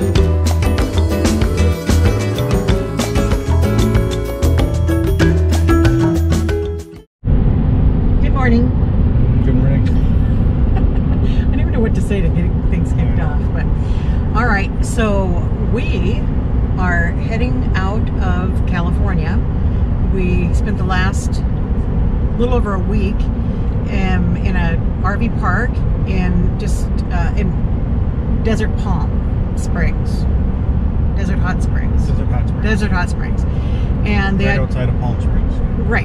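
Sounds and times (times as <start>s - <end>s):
road and engine rumble: 0.0s - 36.0s
people talking: 8.2s - 19.4s, 20.1s - 21.4s, 22.4s - 27.6s, 28.4s - 30.3s, 31.2s - 36.0s.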